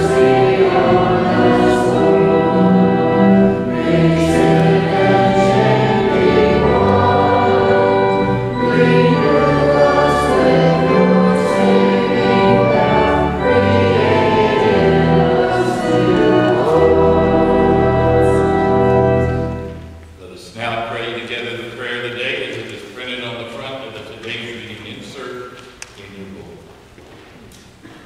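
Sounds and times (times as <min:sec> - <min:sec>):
group singing a hymn: 0:00.0 - 0:19.7
organ accompaniment: 0:00.0 - 0:25.2.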